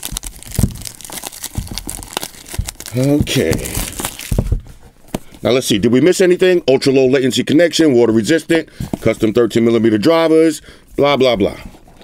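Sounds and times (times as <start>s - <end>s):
plastic shrink wrap crinkling: 0.0s - 4.9s.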